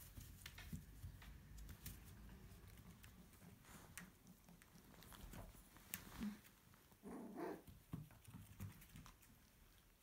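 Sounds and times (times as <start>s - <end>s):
puppy vocalisation: 7.0s - 7.7s.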